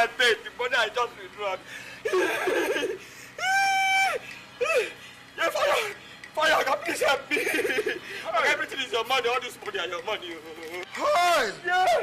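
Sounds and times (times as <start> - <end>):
person sobbing cry: 2.0 - 5.0.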